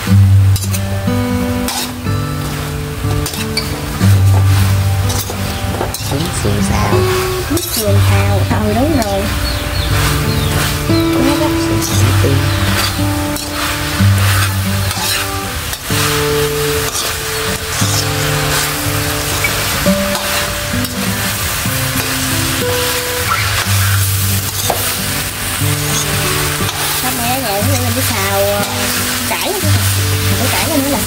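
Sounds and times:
food sizzling in a wok: 0.0s - 31.0s
slow instrumental music: 0.0s - 31.0s
metal spoon scraping a wok: 0.6s - 0.9s, 1.7s - 6.1s, 12.6s - 20.6s, 23.4s - 27.1s.

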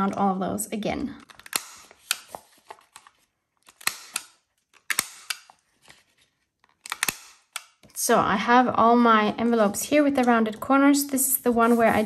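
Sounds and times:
corner punch clicking: 1.2s - 2.3s, 3.7s - 5.5s, 6.8s - 7.9s
paper rustling: 1.3s - 3.8s, 5.5s - 6.8s, 11.2s - 12.0s.

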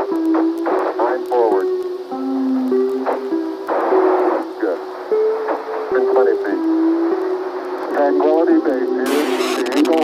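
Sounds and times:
radio static hiss: 0.0s - 10.0s
radio transmission voice: 7.9s - 10.0s.

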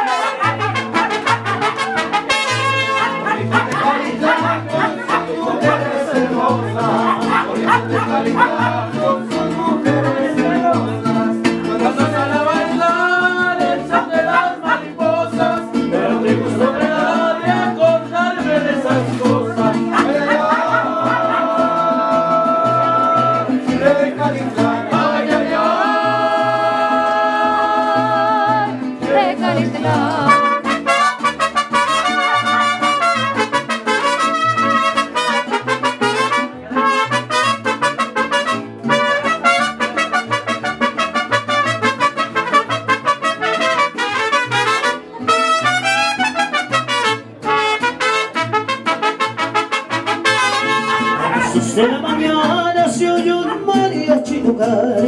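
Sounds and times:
mariachi trumpets: 0.0s - 9.0s, 13.3s - 15.3s, 19.9s - 23.6s, 25.6s - 53.0s
strummed guitars: 0.0s - 55.0s.

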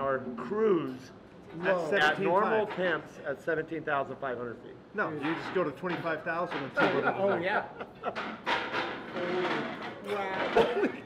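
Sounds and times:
men laughing: 6.7s - 8.5s, 10.6s - 11.0s.

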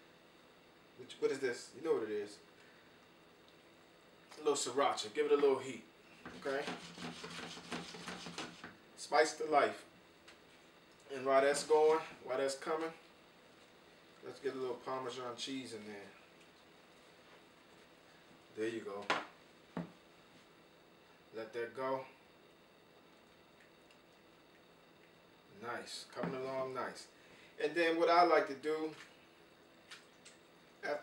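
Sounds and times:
utensil scraping in skillet: 6.3s - 8.7s.

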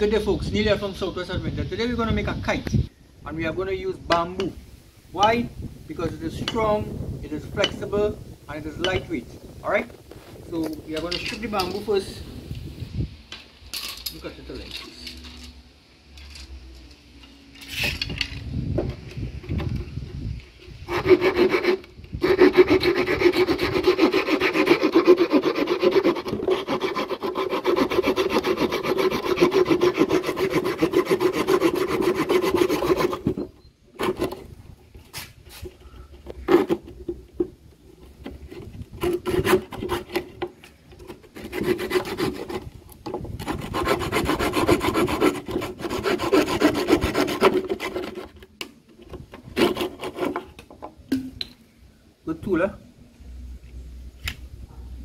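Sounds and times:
hand saw cutting bamboo: 20.8s - 34.5s, 36.4s - 36.9s, 38.2s - 48.4s, 49.3s - 50.6s.

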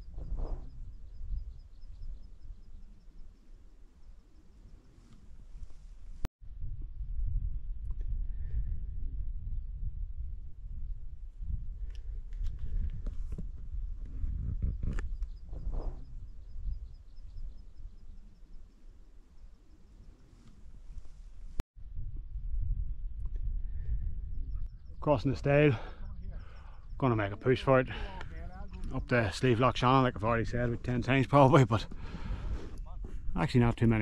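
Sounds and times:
low wind rumble: 0.0s - 34.0s.

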